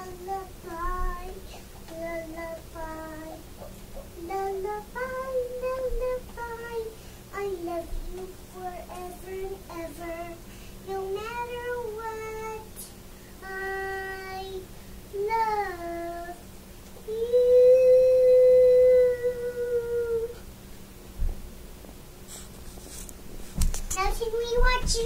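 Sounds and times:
girl singing a lullaby: 0:00.0 - 0:20.4, 0:24.0 - 0:25.0.

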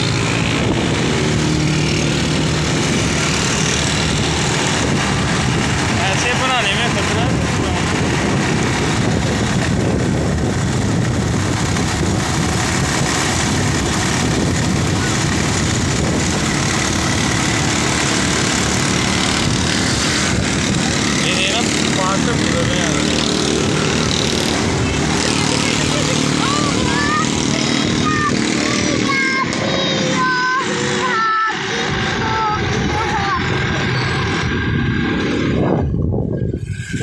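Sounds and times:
motorcycle engine running: 0:00.0 - 0:37.0
wind buffeting microphone: 0:00.0 - 0:37.0.

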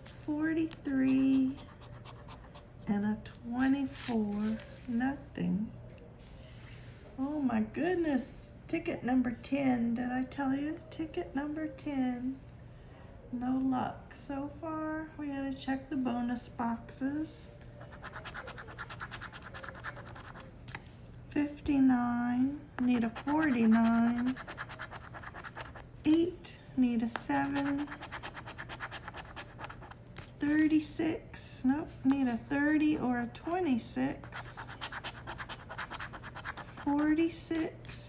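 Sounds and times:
coin scratching lottery ticket: 0:17.9 - 0:20.5, 0:22.9 - 0:25.8, 0:27.4 - 0:30.0, 0:34.3 - 0:37.7.

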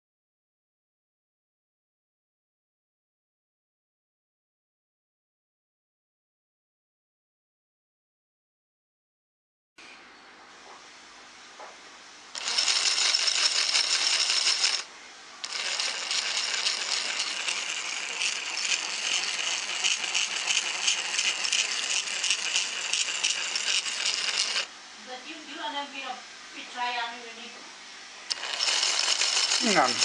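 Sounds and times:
model locomotive motor buzzing rattle: 0:12.4 - 0:24.7, 0:28.3 - 0:30.0.

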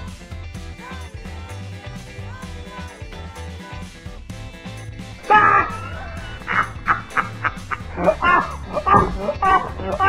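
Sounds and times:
background music: 0:00.0 - 0:10.0
dog-like yips: 0:05.3 - 0:07.2, 0:08.0 - 0:10.0
wavering animal call: 0:05.3 - 0:10.0.

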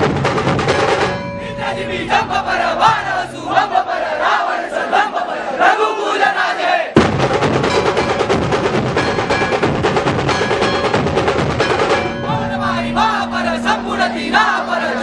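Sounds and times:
rapid drum percussion music: 0:00.0 - 0:01.4, 0:07.0 - 0:14.6
group chanting in unison: 0:01.4 - 0:07.0, 0:12.3 - 0:15.0.

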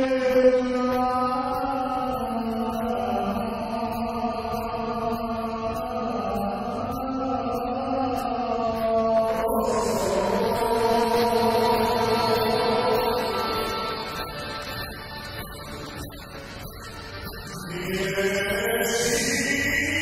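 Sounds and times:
man singing through microphone: 0:00.0 - 0:20.0.

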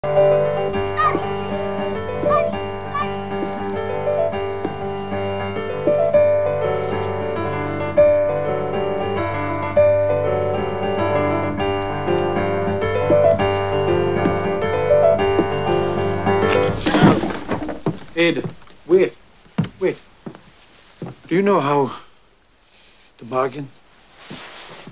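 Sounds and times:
slow piano music: 0:00.0 - 0:17.0.

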